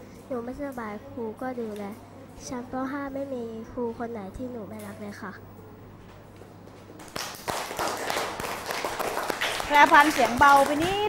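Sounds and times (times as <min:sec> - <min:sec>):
children applauding: 0:07.0 - 0:11.0.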